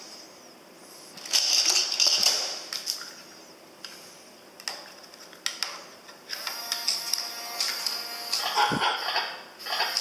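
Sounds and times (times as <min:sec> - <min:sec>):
gear motors whirring: 0:06.3 - 0:10.0
toy electronic sound effects: 0:08.3 - 0:10.0.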